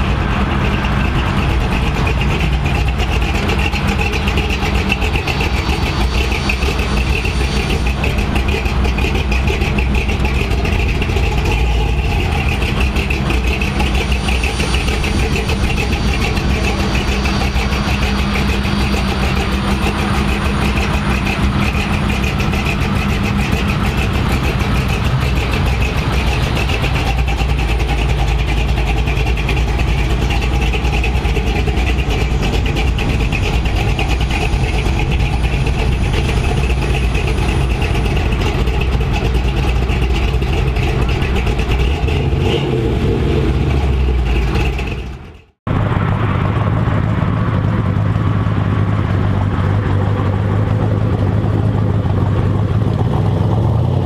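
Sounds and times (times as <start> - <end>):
truck engine low rumble: 0.0 - 54.0.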